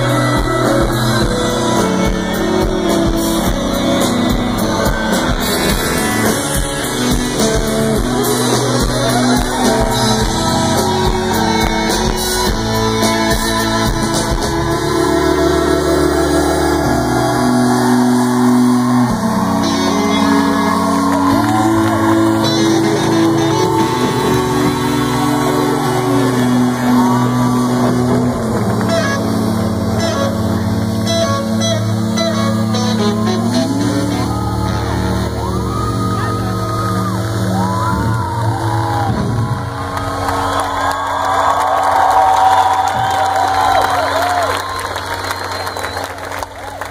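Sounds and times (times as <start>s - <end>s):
crowd voices: 0.0s - 46.9s
live band with electric guitar: 0.0s - 46.9s.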